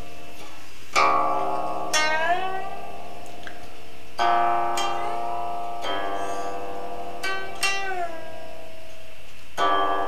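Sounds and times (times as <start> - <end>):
guqin plucked notes: 0.0 - 10.0.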